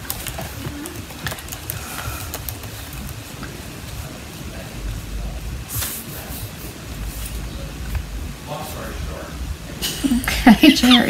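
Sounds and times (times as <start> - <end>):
low rumble: 2.9 - 11.0.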